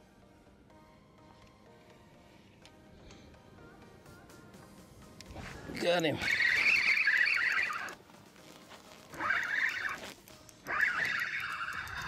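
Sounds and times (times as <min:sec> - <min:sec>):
fishing reel whirring: 0:10.7 - 0:12.0.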